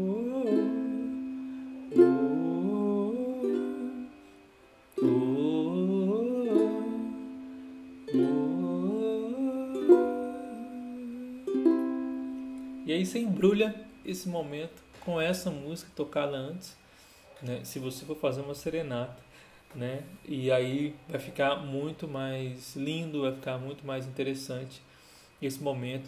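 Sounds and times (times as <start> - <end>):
ukulele strumming chords: 0.0 - 14.1.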